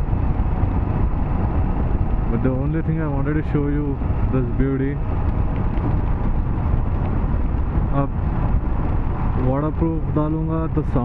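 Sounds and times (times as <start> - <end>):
motorcycle engine rumble: 0.0 - 11.0
wind noise: 0.0 - 11.0.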